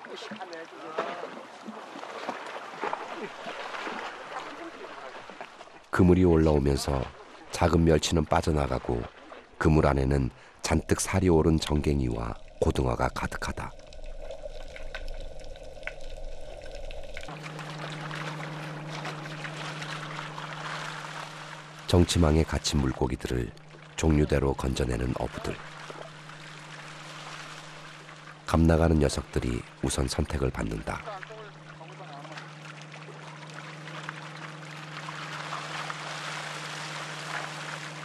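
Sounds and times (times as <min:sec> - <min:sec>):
fishermen calling: 0:00.0 - 0:13.4, 0:17.3 - 0:38.0
boat engine hum: 0:00.0 - 0:38.0
water splashing: 0:00.0 - 0:38.0.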